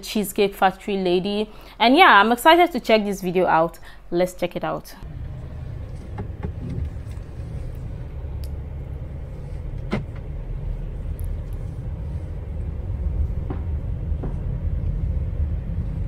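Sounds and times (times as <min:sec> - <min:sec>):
road rumble inside car: 0:05.0 - 0:16.0.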